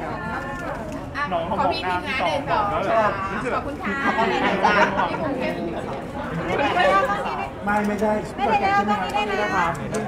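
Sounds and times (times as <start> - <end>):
chatter of several voices: 0.0 - 10.0.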